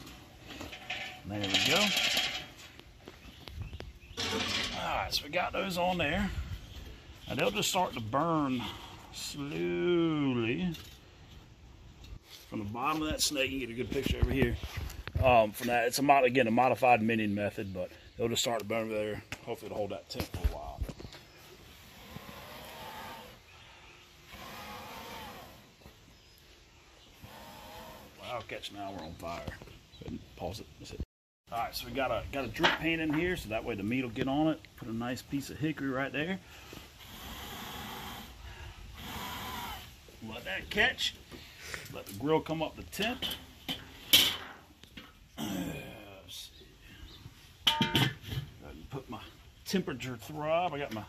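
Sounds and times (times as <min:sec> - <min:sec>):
metal grill lid clanking: 0:00.6 - 0:02.6, 0:04.1 - 0:04.9, 0:43.1 - 0:44.6, 0:47.6 - 0:48.4.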